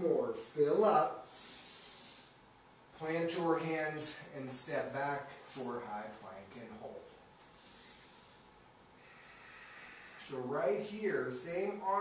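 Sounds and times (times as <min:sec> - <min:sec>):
man exhaling: 0:07.5 - 0:10.2.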